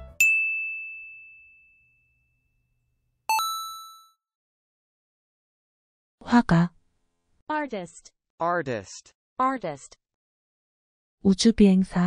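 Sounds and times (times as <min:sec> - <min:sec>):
bell-like ding: 0:00.1 - 0:02.6, 0:03.3 - 0:04.2
bright chime: 0:00.2 - 0:02.2, 0:03.3 - 0:04.1.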